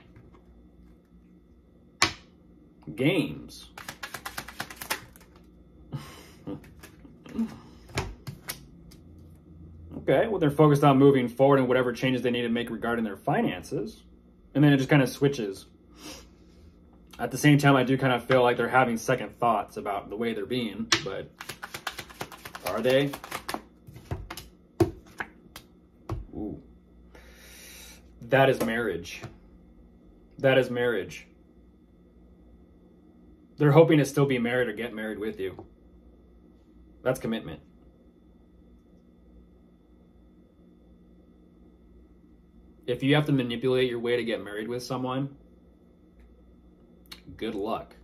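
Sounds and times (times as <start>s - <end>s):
cards being shuffled: 3.7s - 5.5s, 6.5s - 9.0s, 20.9s - 25.7s.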